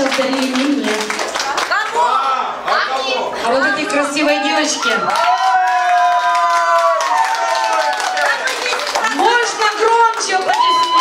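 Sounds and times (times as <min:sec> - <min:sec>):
people clapping along: 0:00.0 - 0:02.8, 0:05.0 - 0:11.0.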